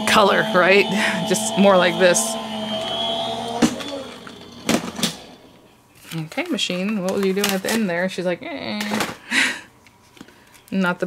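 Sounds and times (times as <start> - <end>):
die-cutting machine humming: 0.0 - 5.7.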